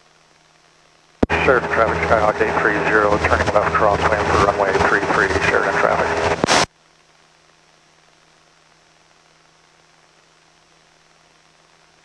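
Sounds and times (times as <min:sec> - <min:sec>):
airplane cockpit engine noise: 0:01.2 - 0:06.7.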